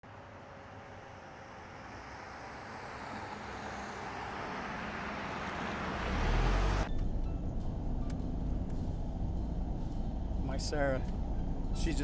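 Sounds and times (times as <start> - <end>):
car approaching: 0.0 - 12.0.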